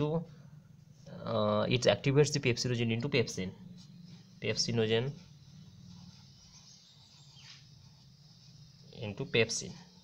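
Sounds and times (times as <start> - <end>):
steady low hum: 0.0 - 10.0
marker writing on paper: 5.1 - 9.0.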